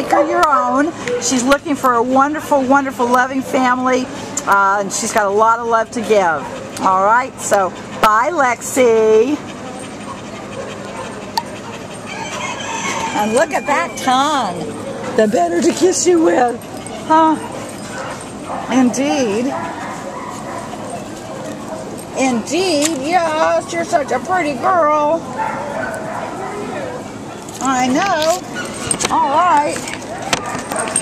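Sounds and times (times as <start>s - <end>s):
dog panting: 0.0s - 31.0s.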